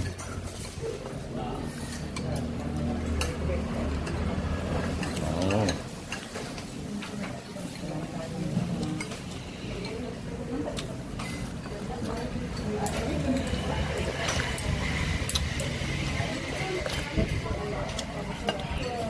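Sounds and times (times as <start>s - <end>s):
cutlery clinking on ceramic bowls: 4.0s - 7.3s, 10.8s - 14.6s.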